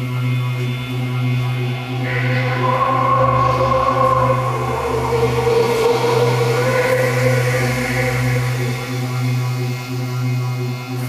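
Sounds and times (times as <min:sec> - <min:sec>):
ambient electronic drone music: 0:00.0 - 0:11.0.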